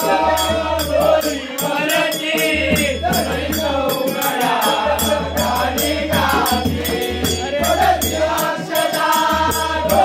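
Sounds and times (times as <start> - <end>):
group of voices singing: 0.0 - 10.0
steady percussion beat: 0.0 - 10.0.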